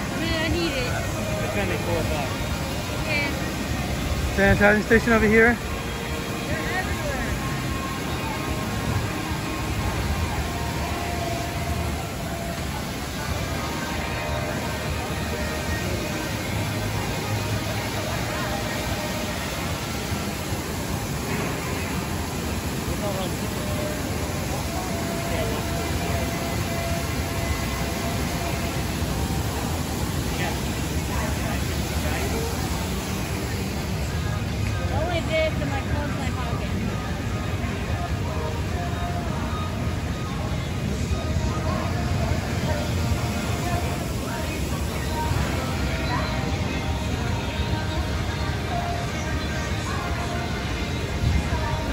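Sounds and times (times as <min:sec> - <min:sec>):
distant indistinct voices: 0:00.0 - 0:51.9
faint music: 0:00.0 - 0:51.9.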